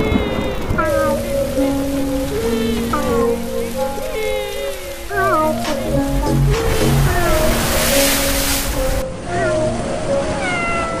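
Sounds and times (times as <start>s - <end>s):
cat meowing: 9.3s - 9.7s, 10.3s - 11.0s.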